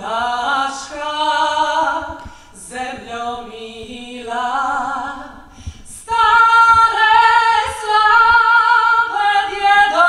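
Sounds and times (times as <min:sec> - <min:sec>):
woman singing unaccompanied: 0:00.0 - 0:10.0
singer breathing: 0:02.2 - 0:02.6, 0:05.4 - 0:06.0.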